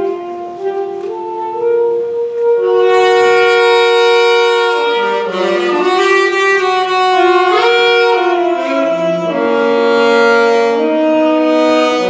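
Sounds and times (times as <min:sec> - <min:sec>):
saxophones playing in harmony: 0:00.0 - 0:12.0.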